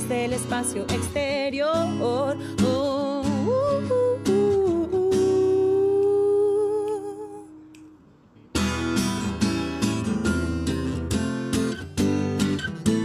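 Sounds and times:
strummed acoustic guitar: 0.0 - 5.9, 8.4 - 13.0
woman singing: 0.0 - 7.7.

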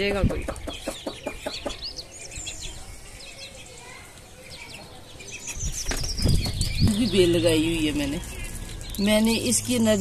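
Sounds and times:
microphone handling noise: 5.6 - 6.9.

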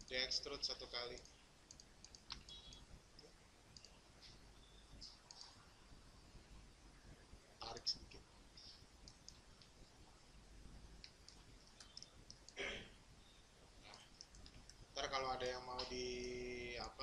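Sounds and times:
faint mouse clicks: 1.1 - 4.4, 5.0 - 5.6, 8.6 - 9.7, 11.0 - 12.6, 13.9 - 14.8.

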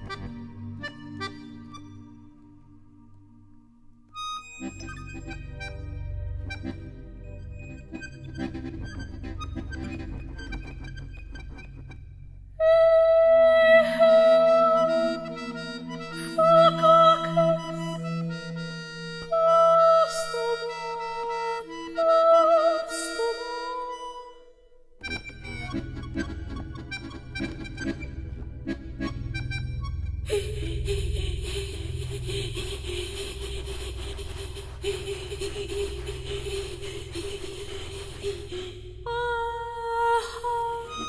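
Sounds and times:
accordion held high notes: 4.2 - 10.1, 13.8 - 24.4, 25.0 - 38.1
low rumbling with clicks: 25.0 - 40.0.

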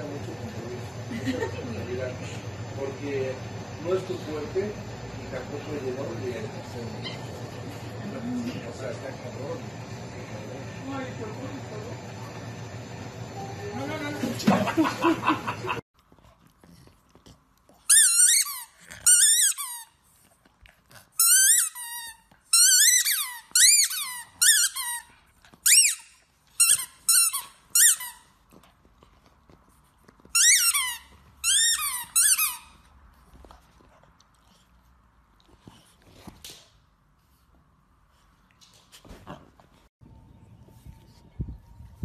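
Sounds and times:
squeaky dog toy squeaking: 17.9 - 19.9, 21.2 - 28.3, 30.3 - 32.8.

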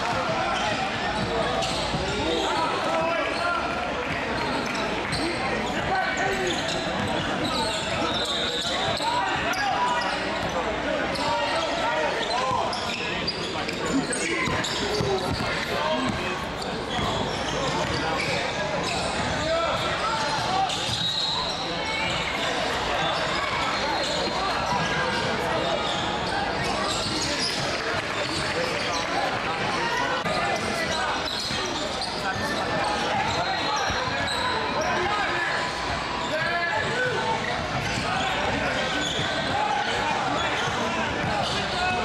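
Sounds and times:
people talking and calling out: 0.0 - 42.0.

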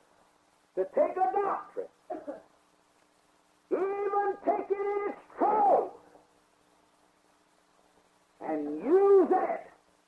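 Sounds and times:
faint recording hum: 0.0 - 10.0
man preaching: 0.8 - 2.4, 3.7 - 6.1, 8.4 - 9.8.

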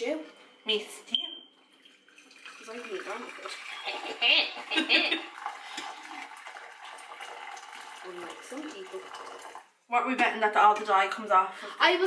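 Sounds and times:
water pouring into a pot: 1.7 - 9.8.

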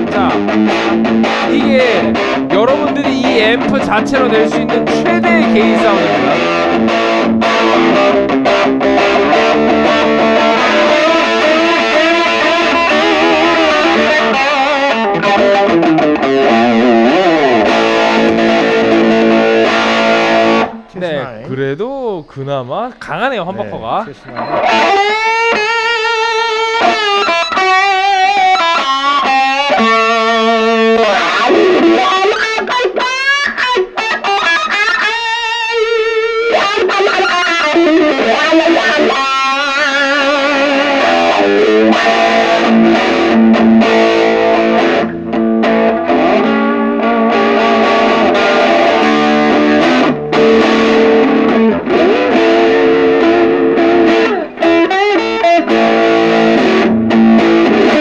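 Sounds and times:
crunchy electric guitar playing: 0.0 - 21.4, 23.6 - 58.0.

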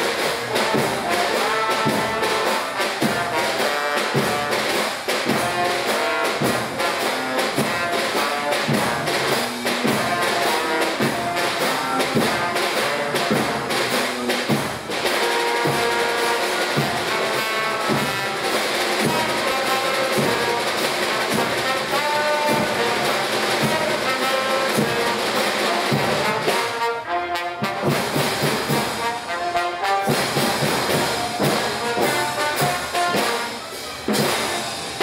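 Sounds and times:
marching band playing: 0.0 - 35.0
snare and bass drums: 0.0 - 35.0
trombone: 0.0 - 35.0.

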